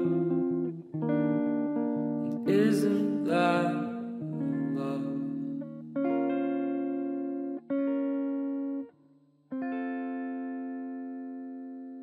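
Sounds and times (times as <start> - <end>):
guitar chords: 0.0 - 12.0.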